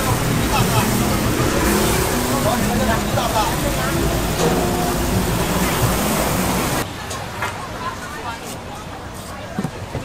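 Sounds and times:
chicken sizzling on grill: 0.0 - 6.8.

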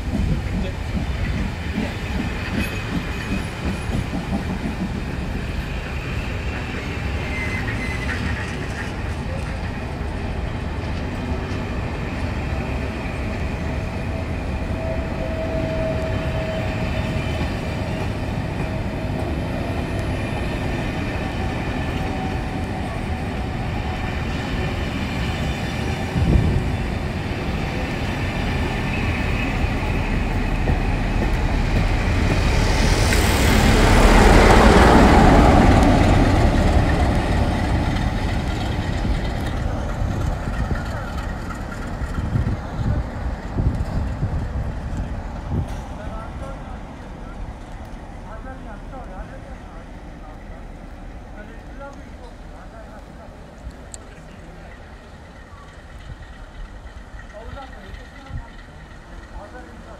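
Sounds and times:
diesel locomotive approaching: 0.0 - 59.9
train wheels rumbling on rails: 0.0 - 59.9.

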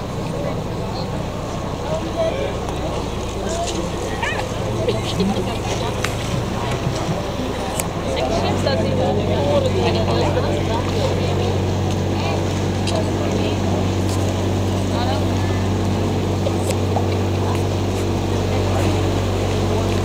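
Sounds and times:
boat motor humming: 0.0 - 20.0
people talking: 0.0 - 20.0.

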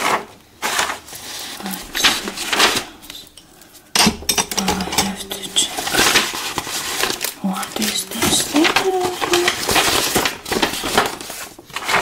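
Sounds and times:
paper rustling and shuffling: 0.0 - 3.9, 4.8 - 12.0.

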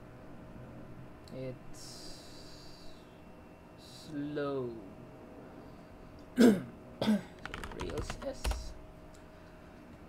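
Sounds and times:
man coughing hoarsely: 6.4 - 7.4
computer keyboard typing: 7.4 - 8.8.

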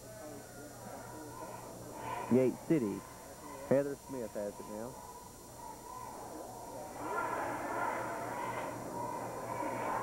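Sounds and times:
crowd voices in gymnasium: 0.0 - 10.0
steady low hum: 0.0 - 10.0.

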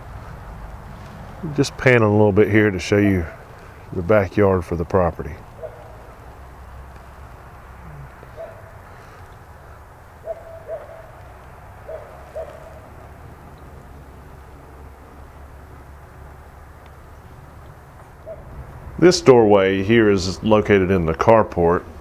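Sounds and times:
bird hooting: 7.8 - 11.2, 11.8 - 13.7.

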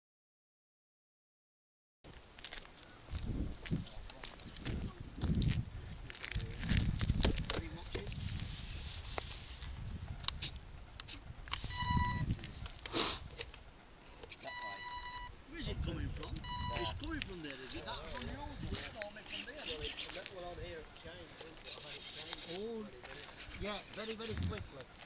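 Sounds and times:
electronic beeps: 11.6 - 12.3, 14.4 - 15.4, 16.4 - 17.0
indistinct voices talking: 14.3 - 25.0.

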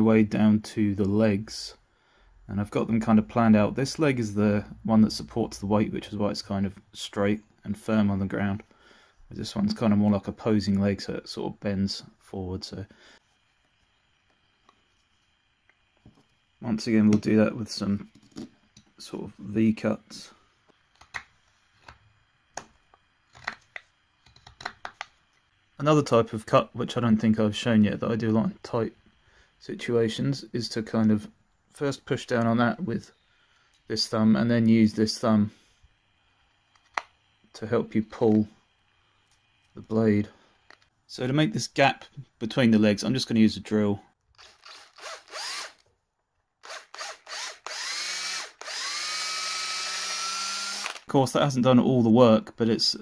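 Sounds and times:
power drill boring into wood: 44.4 - 45.8, 46.6 - 51.1.

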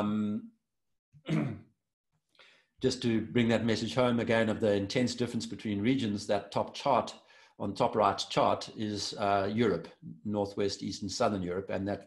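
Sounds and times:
man clearing throat: 1.3 - 1.7
faint breath in: 2.3 - 2.8, 7.2 - 7.6.

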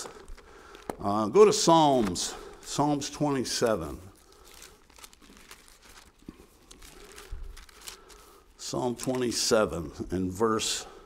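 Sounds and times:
paper pages rustling: 1.6 - 9.6.

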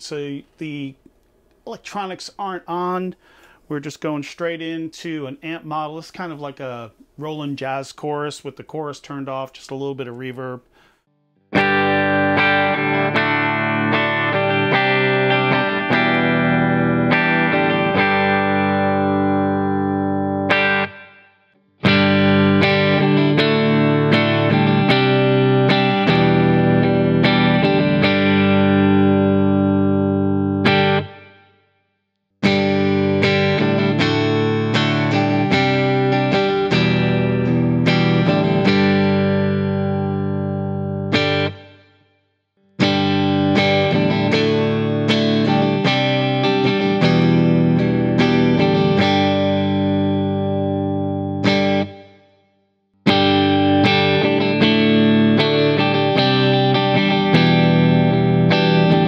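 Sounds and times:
clean electric guitar chords: 11.5 - 31.4, 32.4 - 41.8, 42.8 - 52.1, 53.1 - 59.0.

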